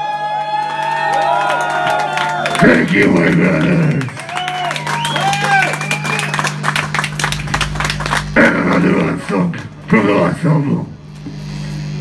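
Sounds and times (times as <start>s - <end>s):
audience clapping: 0.0s - 9.9s
amplifier hum: 2.5s - 12.0s.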